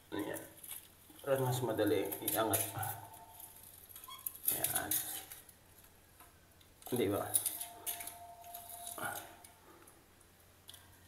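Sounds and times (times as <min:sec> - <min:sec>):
man talking: 0:01.2 - 0:03.1, 0:04.5 - 0:05.3, 0:06.9 - 0:07.4.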